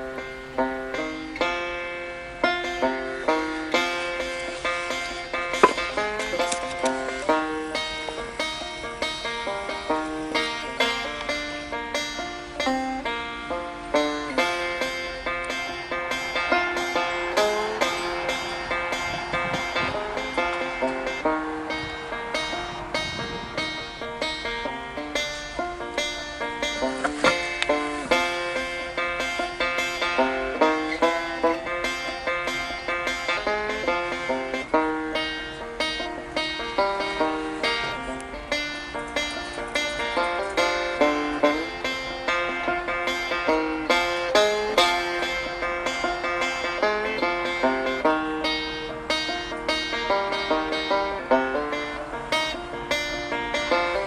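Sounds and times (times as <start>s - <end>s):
plucked banjo tune: 0.0s - 54.0s.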